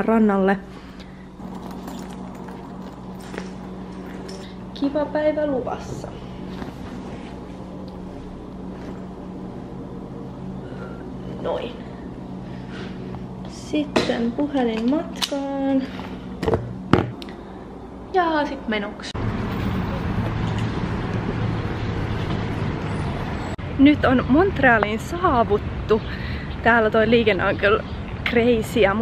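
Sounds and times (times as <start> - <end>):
low room hum: 0.0 - 29.0
street traffic rumble: 0.0 - 29.0
jacket rustling: 1.3 - 4.5, 6.3 - 9.5.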